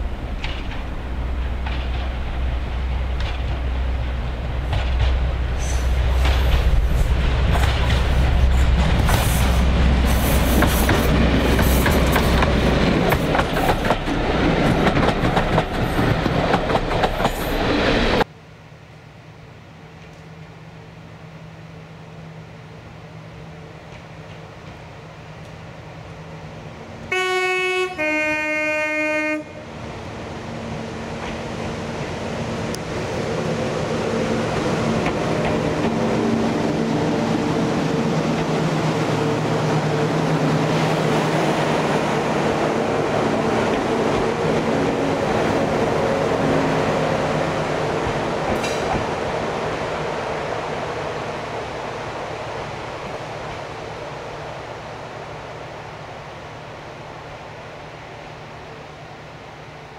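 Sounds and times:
vehicle engine and wheel noise: 0.0s - 17.9s
two-tone horn: 27.1s - 29.7s.

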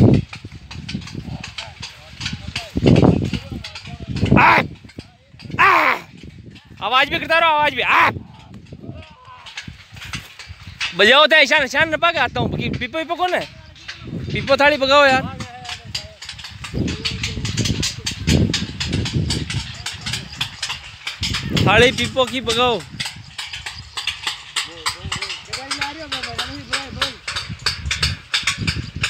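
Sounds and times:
metal plates clanging: 0.8s - 29.0s
distant shouting voices: 4.2s - 4.8s, 5.4s - 6.2s, 6.8s - 9.6s
person shouting: 4.3s - 4.7s, 5.5s - 6.1s, 7.8s - 8.2s.

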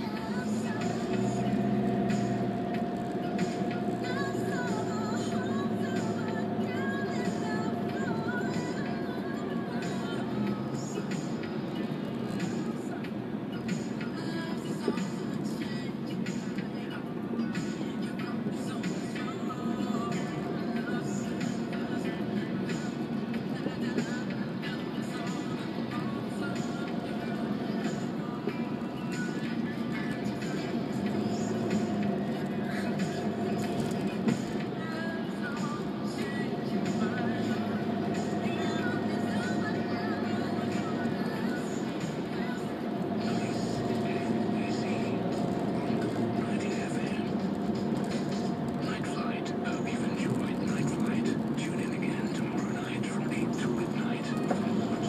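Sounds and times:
radio music in car: 0.0s - 55.0s
road and engine noise: 0.0s - 55.0s.

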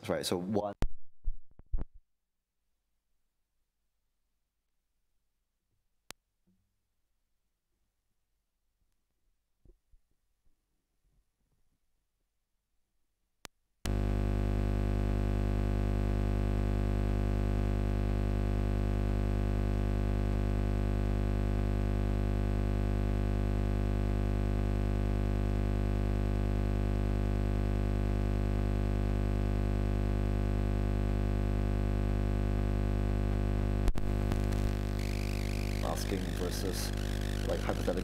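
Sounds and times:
electrical mains hum: 13.9s - 38.0s.

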